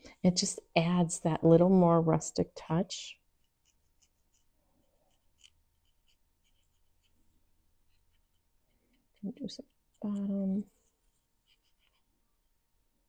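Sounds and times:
faint brush scratches on wood: 3.4 - 7.2, 7.9 - 12.1.

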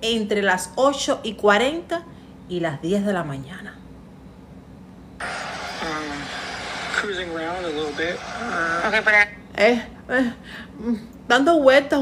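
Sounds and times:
halting speech: 5.2 - 9.2
steady hiss: 5.2 - 9.2.

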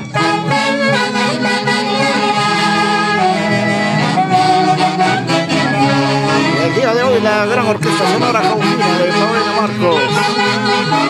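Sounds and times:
saxophone-led folk band: 0.0 - 11.0.

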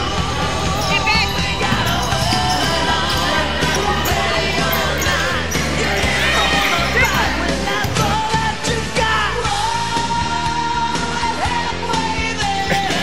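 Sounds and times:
basketball bouncing on gym floor: 0.8 - 8.3.

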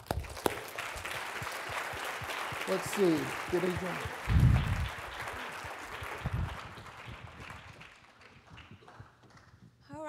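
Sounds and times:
audience applause: 0.0 - 9.6.

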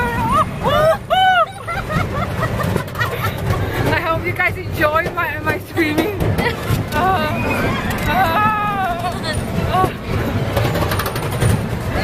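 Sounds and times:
people exclaiming and laughing: 0.0 - 3.9, 5.8 - 10.1.

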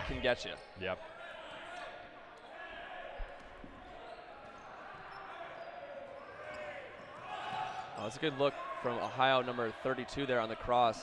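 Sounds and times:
voices echoing in hall: 0.0 - 11.0.

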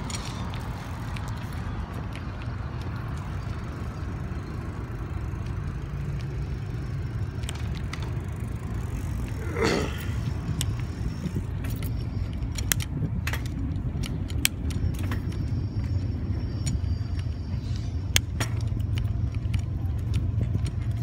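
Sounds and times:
bicycle tyres rumbling on road: 0.0 - 21.0
bike parts clicking and rattling: 0.0 - 21.0.

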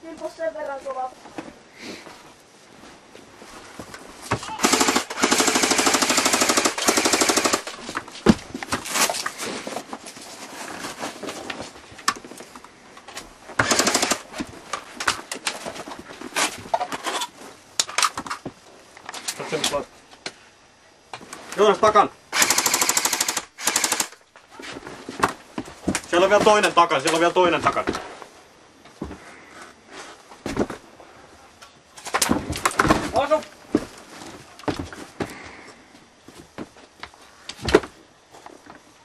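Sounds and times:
airsoft guns firing: 4.4 - 7.7, 13.6 - 14.2, 22.3 - 24.2.

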